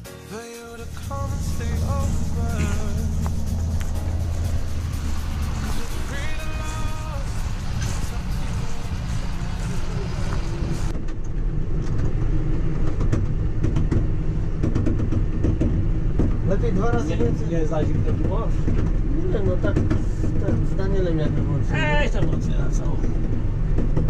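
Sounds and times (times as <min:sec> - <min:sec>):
tractor engine droning: 0:00.0 - 0:24.0
light rattling: 0:00.9 - 0:10.9.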